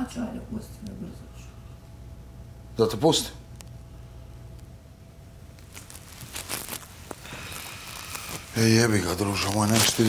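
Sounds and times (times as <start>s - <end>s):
rustles: 5.6s - 10.0s.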